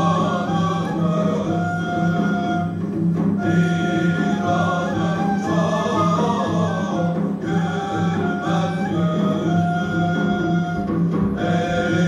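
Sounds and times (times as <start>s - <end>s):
male chorus singing: 0.0s - 2.5s, 3.4s - 10.4s, 11.4s - 12.0s
instrumental accompaniment: 0.0s - 12.0s.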